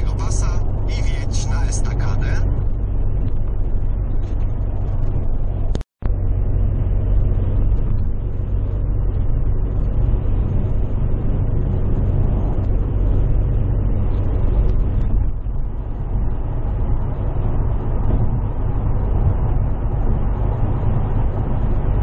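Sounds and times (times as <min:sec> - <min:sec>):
car road noise from inside cabin: 0:00.0 - 0:22.0.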